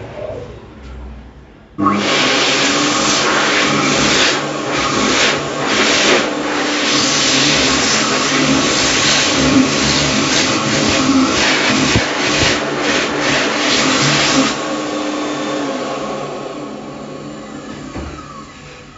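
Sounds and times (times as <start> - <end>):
hand dryer running: 1.8 - 18.9.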